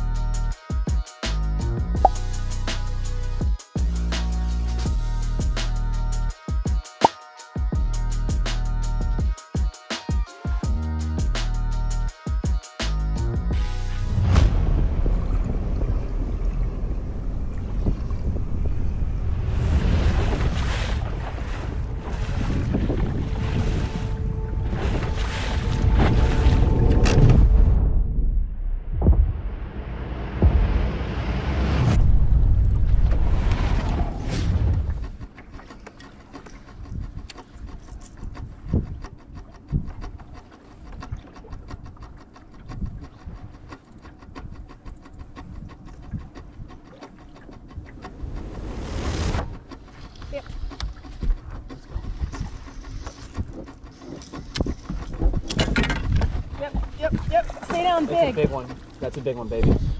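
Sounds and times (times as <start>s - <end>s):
choppy lake water: 13.6s - 27.8s, 32.6s - 59.9s
wind buffeting microphone: 14.2s - 29.6s, 36.4s - 59.9s.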